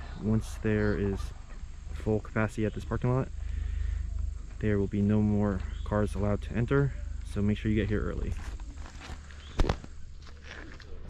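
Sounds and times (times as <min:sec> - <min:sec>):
footsteps on gravel: 0:03.0 - 0:11.0.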